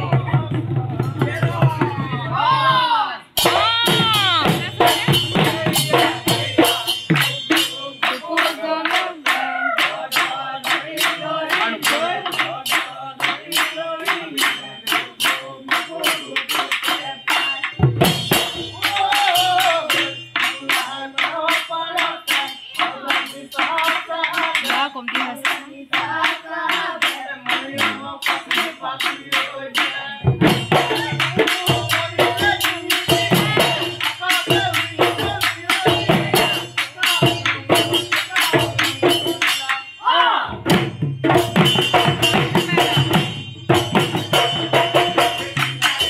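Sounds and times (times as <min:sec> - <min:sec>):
fast drum beat: 0:00.0 - 0:39.9, 0:40.5 - 0:46.0
men singing in chorus: 0:03.4 - 0:46.0
cymbal or clap strikes: 0:40.7 - 0:46.0.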